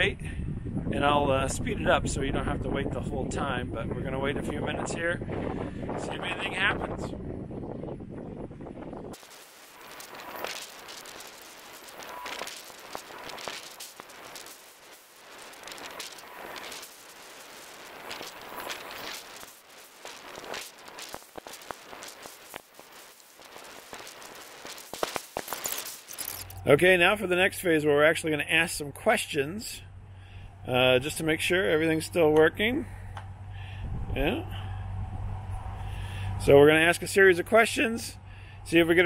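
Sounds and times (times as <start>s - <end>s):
sped-up wind crackling pops: 0.0s - 29.4s.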